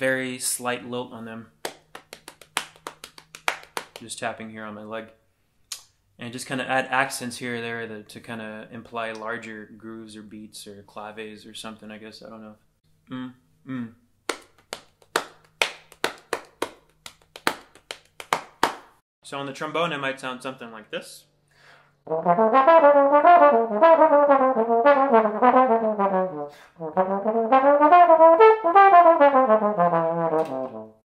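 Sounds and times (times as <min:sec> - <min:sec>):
hand patting on thigh: 0:01.6 - 0:04.0.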